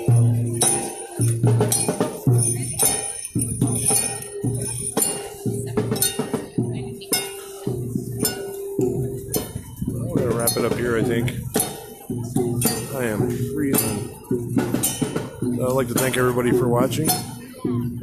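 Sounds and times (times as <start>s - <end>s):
percussion beats: 0.0s - 18.0s.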